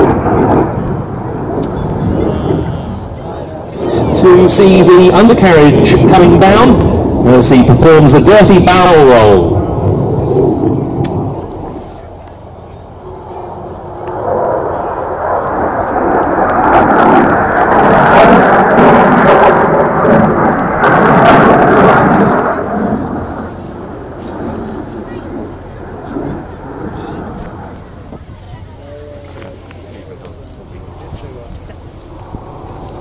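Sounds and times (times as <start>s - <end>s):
fighter jet engine roar: 0.0s - 33.0s.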